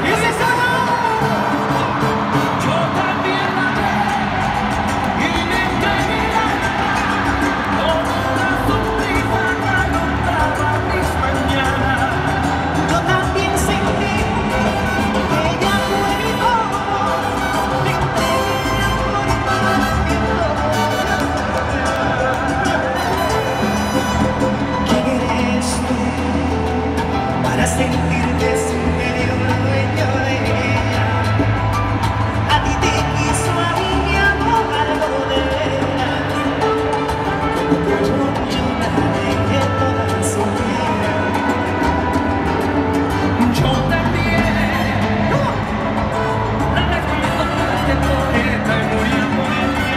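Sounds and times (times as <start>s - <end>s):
live salsa band playing: 0.0s - 49.9s
man singing lead: 0.0s - 49.9s
percussion beat: 0.0s - 49.9s.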